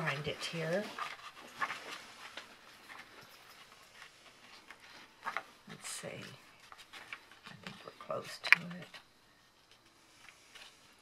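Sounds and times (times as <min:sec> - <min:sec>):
book pages flipping: 0:00.0 - 0:11.0.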